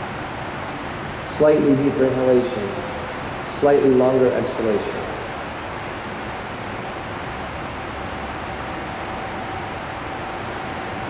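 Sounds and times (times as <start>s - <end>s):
faint steady whine: 0.0s - 11.0s
ventilation blowers rushing air: 0.0s - 11.0s.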